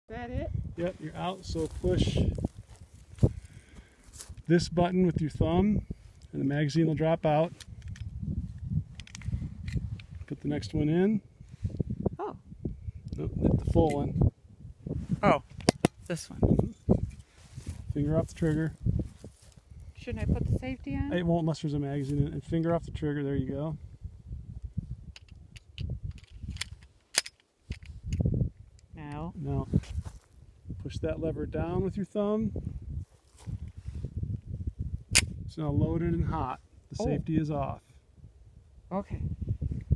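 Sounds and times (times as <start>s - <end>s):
sleeve rustling on microphone: 0.8s - 3.5s, 16.6s - 21.0s, 29.6s - 30.4s, 32.8s - 34.6s.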